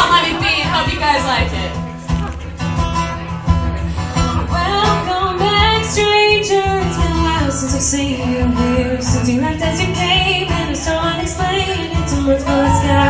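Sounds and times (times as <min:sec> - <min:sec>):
acoustic guitar strumming: 0:00.0 - 0:13.0
person singing: 0:04.5 - 0:13.0.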